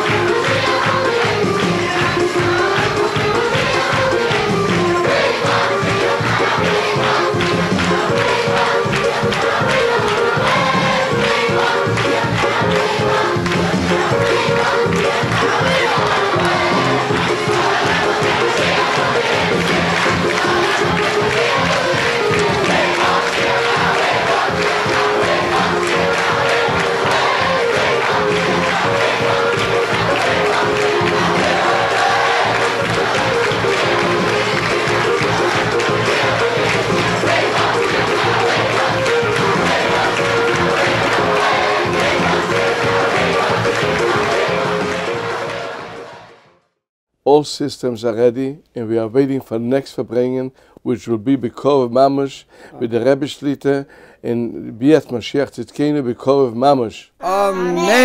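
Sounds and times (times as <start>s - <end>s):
crowd singing in unison: 0.0s - 46.5s.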